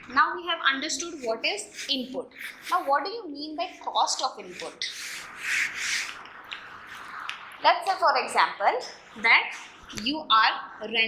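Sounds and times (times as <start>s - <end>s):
duster rubbing a whiteboard: 0.8s - 6.2s.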